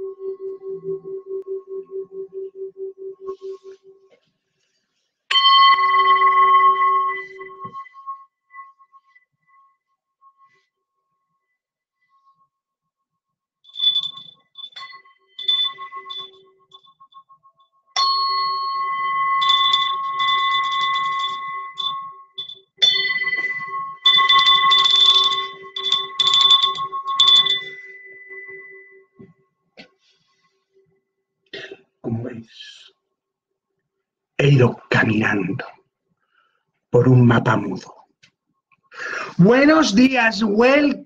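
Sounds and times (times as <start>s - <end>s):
singing bowl ringing: 0.0s - 4.1s, 5.3s - 12.5s, 13.7s - 29.2s.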